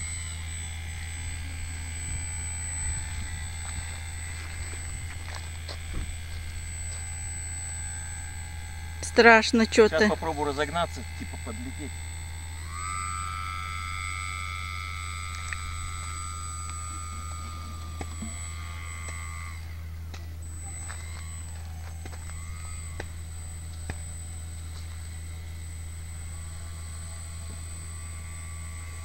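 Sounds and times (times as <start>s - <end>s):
electric motor and propeller whining: 0.0s - 29.0s.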